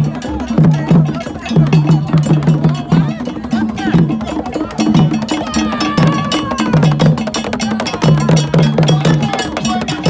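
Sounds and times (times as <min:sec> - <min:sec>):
bell clanking: 0:00.0 - 0:10.0
hand drums beating: 0:00.0 - 0:10.0.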